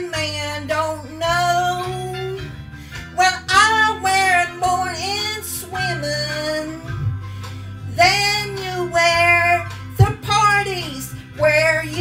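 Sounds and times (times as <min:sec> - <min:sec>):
backing music: 0:00.0 - 0:12.0
woman singing into microphone: 0:00.0 - 0:12.0.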